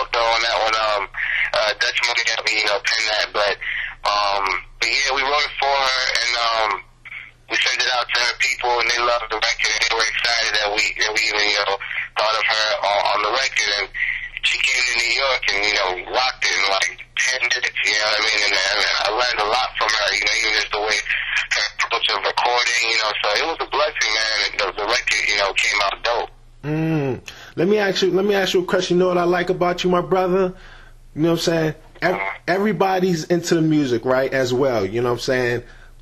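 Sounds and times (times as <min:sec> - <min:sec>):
person talking: 0:00.0 - 0:35.8
faint steady hum: 0:00.0 - 0:36.0.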